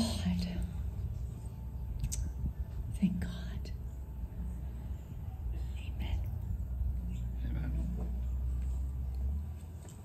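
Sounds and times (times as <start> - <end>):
faint whispered voices: 0.0 - 8.6
steady low rumble: 0.0 - 10.0.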